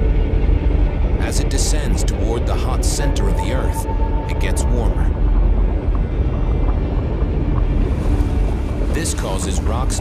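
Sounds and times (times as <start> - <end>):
deep rumble: 0.0 - 10.0
faint low musical drone: 0.0 - 10.0.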